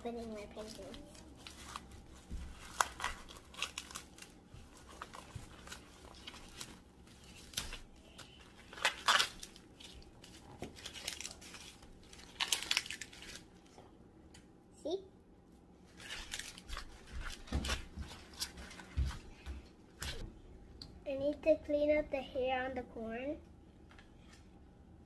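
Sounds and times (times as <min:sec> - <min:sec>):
corn husks tearing and rustling: 0:00.1 - 0:13.6, 0:15.9 - 0:18.9.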